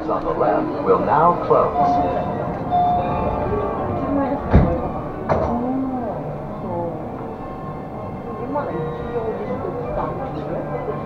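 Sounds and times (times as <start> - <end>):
music: 0.0 - 11.0
voices: 0.0 - 11.0
train doors shutting thumps: 1.8 - 5.8.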